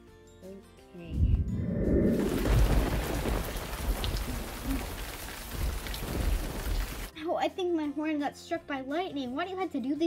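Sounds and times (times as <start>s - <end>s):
low thunder rumbling: 1.1s - 7.1s
heavy rain: 2.1s - 7.1s.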